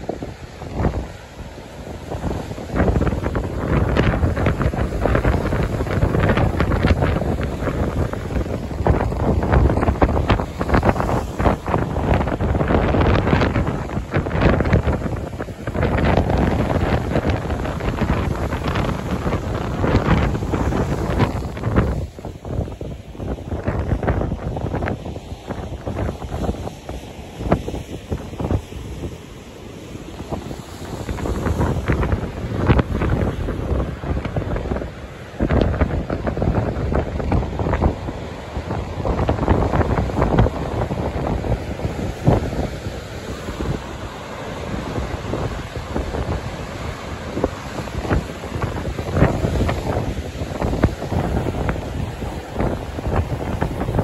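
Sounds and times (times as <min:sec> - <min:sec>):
surf breaking on rocks: 0:00.0 - 0:54.0
wind buffeting microphone: 0:00.0 - 0:54.0.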